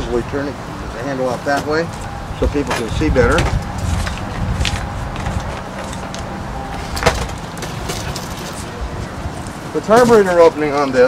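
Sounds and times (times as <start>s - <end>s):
steady low rumble: 0.0s - 9.8s.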